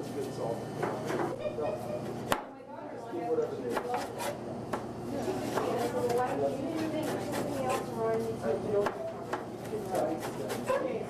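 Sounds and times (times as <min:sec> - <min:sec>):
knife chopping on cutting board: 0:03.7 - 0:07.9, 0:08.8 - 0:10.8.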